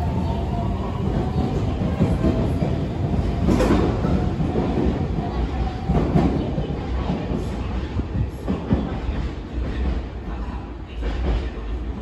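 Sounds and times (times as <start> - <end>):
electric train rumbling: 0.0 - 12.0
train wheels clattering on rails: 0.1 - 12.0.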